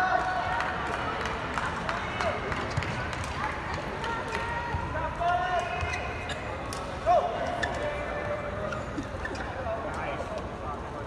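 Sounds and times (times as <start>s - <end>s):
sneaker squeaks: 5.7s - 9.7s.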